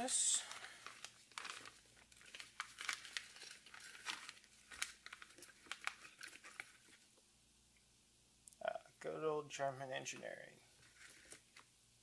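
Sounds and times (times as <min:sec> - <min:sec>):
plastic bag crinkling: 0:00.0 - 0:07.0.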